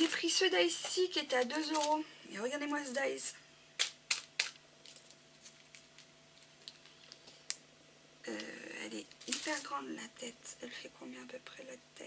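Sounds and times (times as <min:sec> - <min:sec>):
plastic packaging crackling: 0:00.0 - 0:02.0, 0:03.8 - 0:07.6, 0:08.3 - 0:09.9
plastic packaging clicks: 0:01.3 - 0:02.0, 0:03.8 - 0:07.6.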